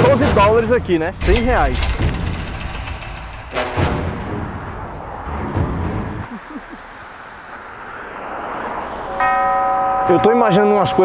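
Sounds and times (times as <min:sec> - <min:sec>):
whoosh: 0:01.2 - 0:06.3
bell-like tone: 0:09.1 - 0:11.0.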